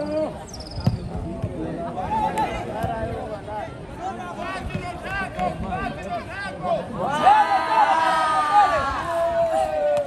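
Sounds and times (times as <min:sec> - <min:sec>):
football kicked thump: 0:00.8 - 0:01.6
people shouting: 0:07.0 - 0:10.0.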